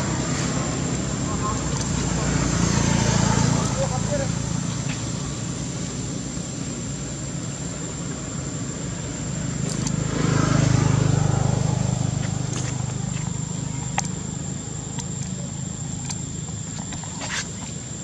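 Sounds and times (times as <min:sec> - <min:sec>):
vehicle engine passing: 0:00.0 - 0:16.4.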